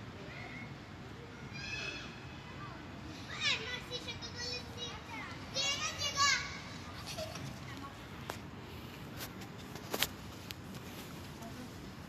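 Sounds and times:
children calling out: 0.2 - 7.2
children shouting high-pitched: 1.3 - 2.5, 3.2 - 6.8.

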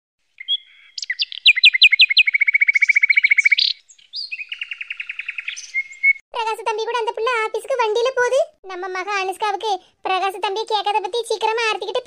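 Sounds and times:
songbird singing: 0.2 - 6.2.

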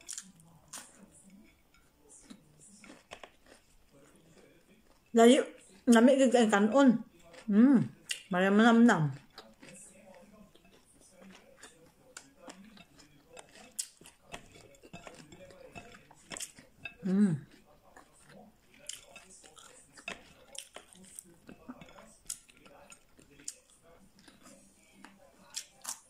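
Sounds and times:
chewing raw vegetables: 0.0 - 6.0, 7.0 - 26.0
person humming mmm: 17.0 - 17.4.

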